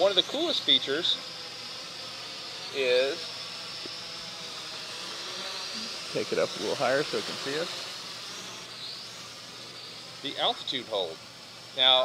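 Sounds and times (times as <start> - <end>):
drone propellers buzzing: 0.0 - 12.0.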